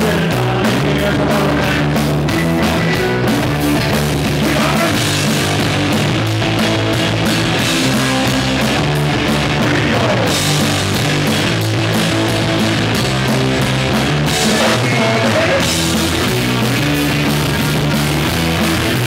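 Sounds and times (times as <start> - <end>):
bass guitar: 0.0 - 19.0
drum kit with cymbals: 0.0 - 19.0
electric guitar: 0.0 - 19.0.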